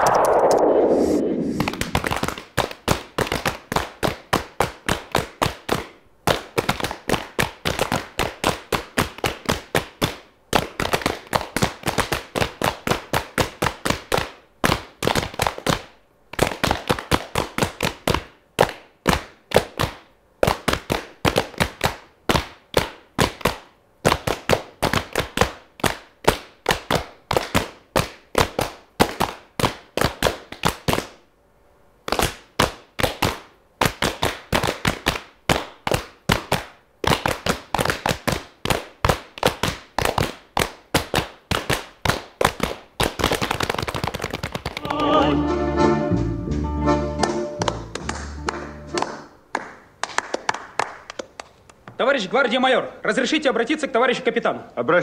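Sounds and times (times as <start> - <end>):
falling whoosh: 0.0 - 2.2
people slapping knees in unison: 1.6 - 31.2, 32.0 - 45.2, 47.2 - 51.7.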